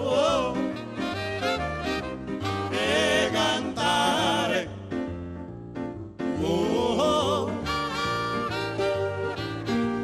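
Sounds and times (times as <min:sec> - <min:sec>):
male vocal group singing: 0:00.0 - 0:01.0, 0:02.5 - 0:05.0, 0:06.3 - 0:08.0
instrumental accompaniment: 0:00.4 - 0:10.0.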